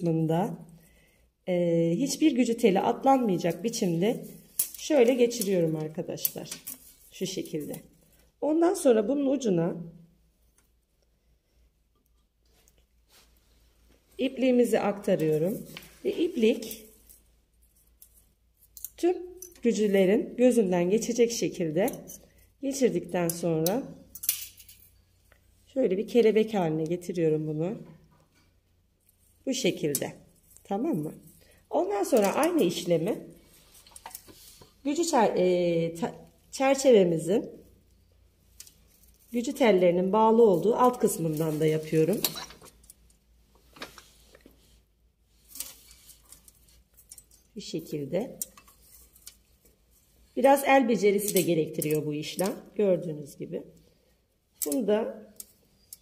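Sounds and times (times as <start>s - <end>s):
wire heddles clicking and rustling: 2.1s - 8.4s, 11.9s - 20.1s, 27.8s - 35.0s, 37.5s - 52.8s, 53.7s - 56.0s
wire heddles clicking: 3.5s - 8.1s, 45.4s - 50.2s.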